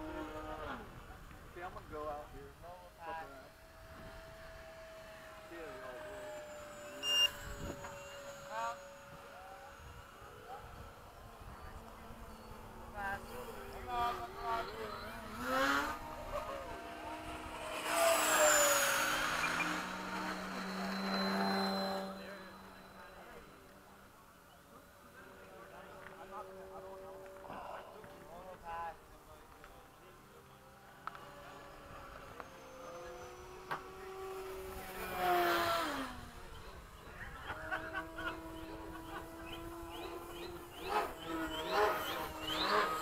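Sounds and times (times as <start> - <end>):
model jet fan whining: 0.0 - 43.0.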